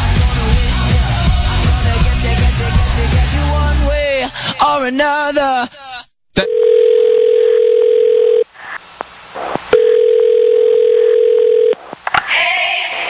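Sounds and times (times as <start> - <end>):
music with singing: 0.0 - 4.6
telephone ringing tone: 6.4 - 8.5, 9.8 - 11.8.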